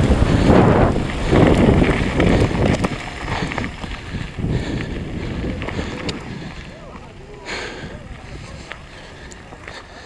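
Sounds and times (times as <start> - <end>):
bike tyres crunching on gravel: 0.0 - 10.0
wind buffeting microphone: 0.0 - 10.0
people's voices: 2.2 - 10.0.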